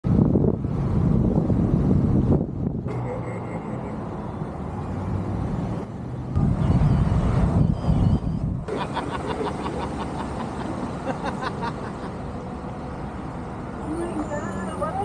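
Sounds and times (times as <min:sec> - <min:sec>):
wind rushing over microphone: 0:00.0 - 0:03.0, 0:05.1 - 0:08.7
road and engine rumble: 0:00.0 - 0:15.0.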